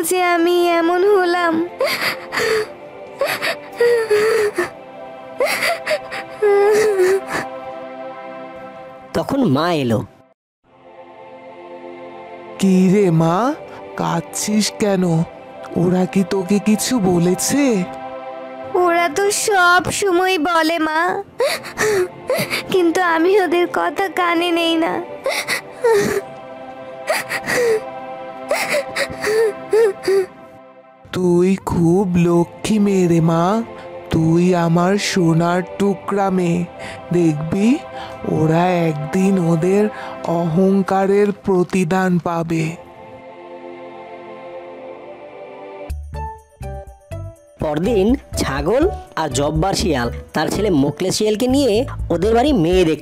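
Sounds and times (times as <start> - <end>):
soft background music: 0.0 - 53.0
woman sobbing: 1.6 - 4.8, 5.4 - 7.6, 21.4 - 23.0, 25.0 - 26.3, 27.0 - 30.4.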